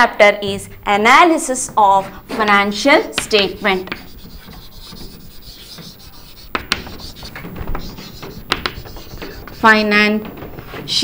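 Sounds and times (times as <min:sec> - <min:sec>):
chalk scratching on chalkboard: 0:00.6 - 0:11.0
chalk ticks: 0:00.7 - 0:10.8.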